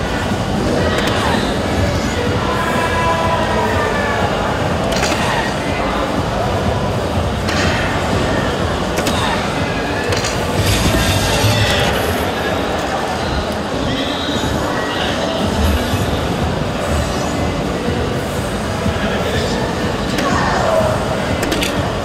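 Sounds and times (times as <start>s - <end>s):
crowded hall din: 0.0s - 22.0s.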